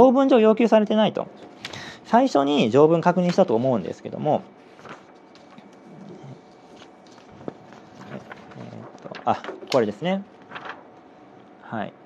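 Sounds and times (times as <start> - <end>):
faint handling noises: 3.2 - 11.6.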